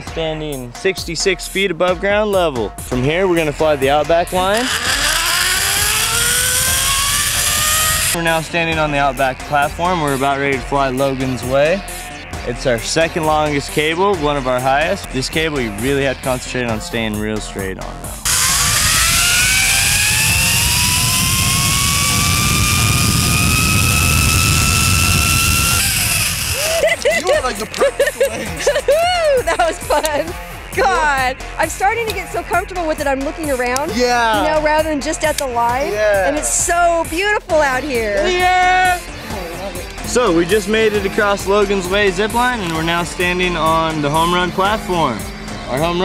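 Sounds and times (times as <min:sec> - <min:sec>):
zip line pulley whine: 0:04.4 - 0:08.2, 0:18.2 - 0:27.3
loud rushing hiss: 0:18.3 - 0:27.0.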